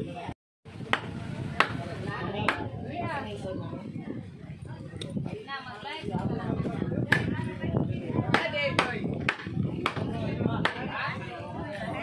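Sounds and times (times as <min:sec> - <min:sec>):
cleaver chopping meat: 0:00.9 - 0:02.6, 0:08.3 - 0:10.9.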